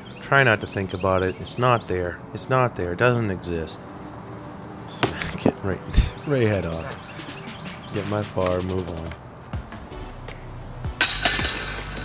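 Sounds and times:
metal chains jangling: 0:11.0 - 0:12.0.

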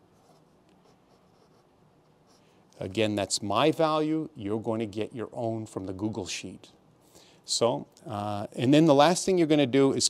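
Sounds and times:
pencil scratching on paper: 0:00.0 - 0:02.5.

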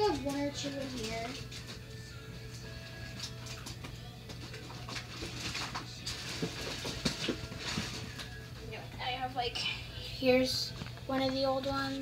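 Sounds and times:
plastic toys clicking and rattling: 0:00.0 - 0:01.9.

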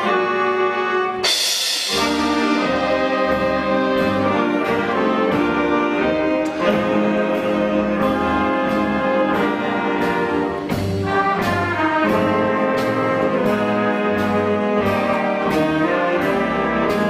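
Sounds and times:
drums keeping a steady beat: 0:00.0 - 0:17.0
saxophones: 0:00.0 - 0:17.0
trombones: 0:00.0 - 0:17.0
trumpets: 0:00.0 - 0:17.0.

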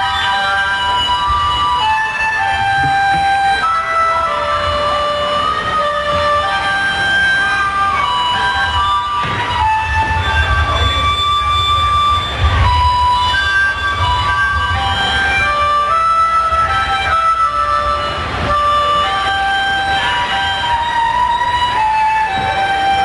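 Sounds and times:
harmonica melody: 0:00.0 - 0:23.0
pulsing bass: 0:00.0 - 0:23.0.

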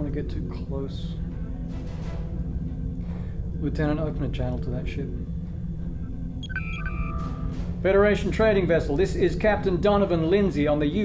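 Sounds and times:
steady low rumble: 0:00.0 - 0:11.0
electronic beeps: 0:06.4 - 0:07.8.

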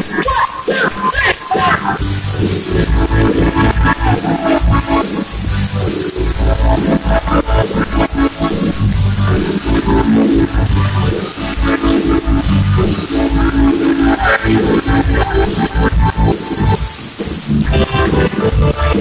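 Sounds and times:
live band playing amplified music: 0:00.0 - 0:19.0.

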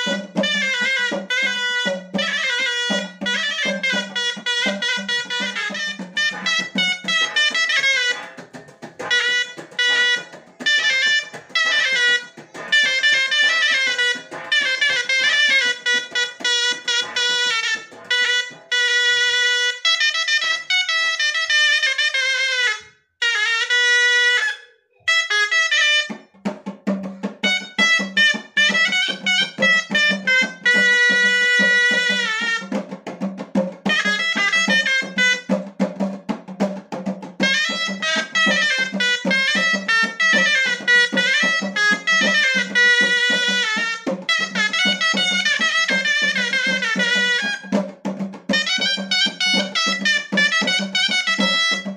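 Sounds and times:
shawm playing fast melody: 0:00.0 - 0:51.9.

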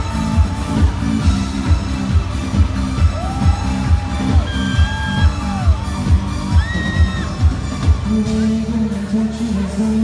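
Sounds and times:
live amplified pop music: 0:00.0 - 0:10.0.

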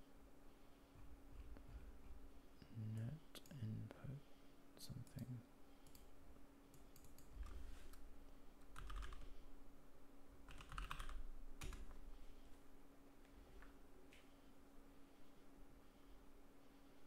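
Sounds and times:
computer keyboard typing: 0:06.7 - 0:08.0, 0:08.6 - 0:09.3, 0:10.5 - 0:12.0.

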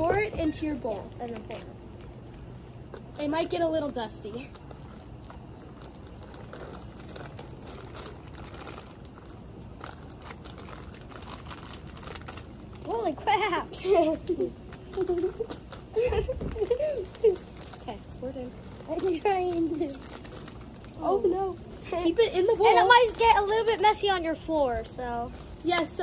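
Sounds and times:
people talking: 0:00.0 - 0:01.7, 0:03.2 - 0:04.6, 0:12.8 - 0:20.0, 0:21.0 - 0:26.0
plastic bags crinkling: 0:03.0 - 0:26.0.

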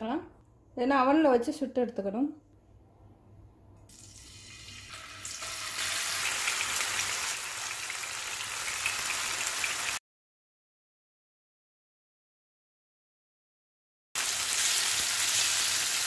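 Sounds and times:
chicken sizzling in frying oil: 0:03.9 - 0:10.0, 0:14.2 - 0:16.0.

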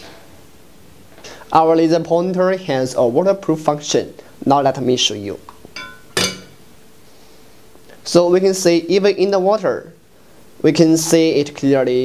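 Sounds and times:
clink against glass pitcher: 0:05.8 - 0:06.6.

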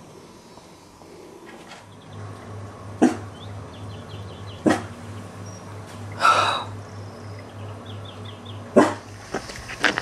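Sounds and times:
puppy barking: 0:03.0 - 0:03.3, 0:04.6 - 0:05.0, 0:08.8 - 0:09.1.

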